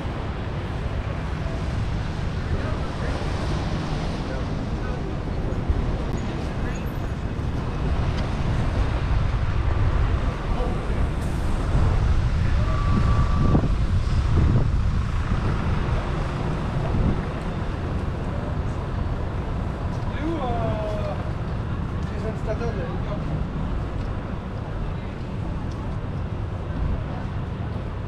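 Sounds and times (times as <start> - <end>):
passersby talking: 0.0 - 14.6, 15.3 - 28.0
vehicles passing: 0.0 - 28.0.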